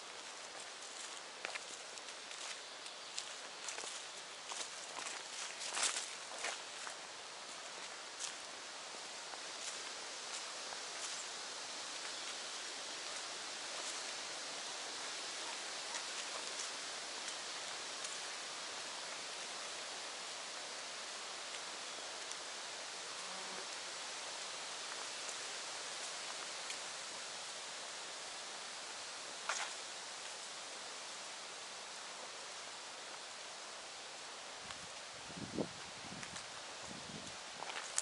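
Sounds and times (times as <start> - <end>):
steady outdoor hiss: 0.0 - 38.0
faint light ticks: 22.2 - 22.5, 34.6 - 35.1, 37.2 - 38.0.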